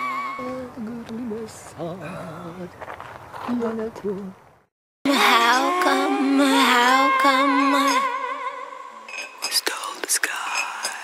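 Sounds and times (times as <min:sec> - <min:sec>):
held wavering sung note: 0:05.1 - 0:09.2
whispered breathy vocals: 0:09.4 - 0:11.0.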